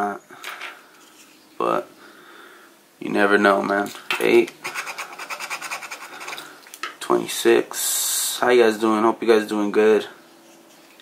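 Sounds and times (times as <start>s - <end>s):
scraper scratching lottery ticket: 4.6s - 6.4s.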